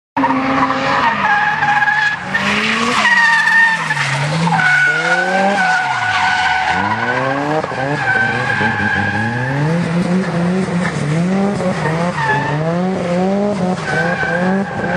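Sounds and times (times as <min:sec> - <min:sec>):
car engine revving: 0:00.2 - 0:14.9.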